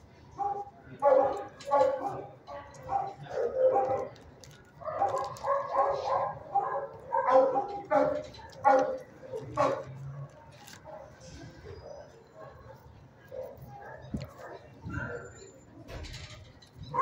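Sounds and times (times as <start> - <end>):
dogs barking: 0.3 - 4.2, 4.8 - 15.4.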